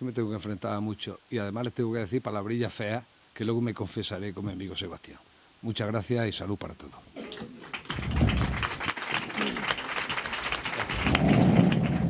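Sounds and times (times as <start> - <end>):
audience applauding: 7.2 - 12.0.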